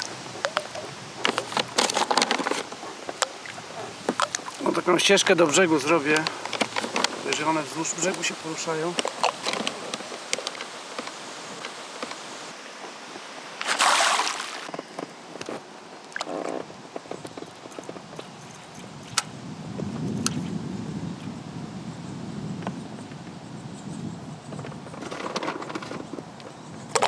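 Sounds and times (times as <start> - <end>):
waves lapping against pontoon: 0.0 - 20.6, 24.5 - 27.0
loud splash: 13.6 - 14.7.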